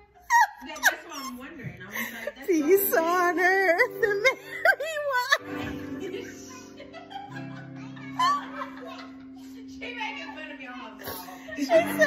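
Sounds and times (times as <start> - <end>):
woman shrieking: 0.2 - 1.4
woman laughing hysterically: 0.2 - 12.0.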